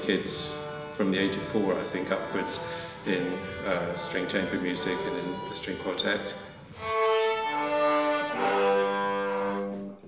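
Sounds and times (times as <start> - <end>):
string quartet playing slow chords: 0.0 - 10.0.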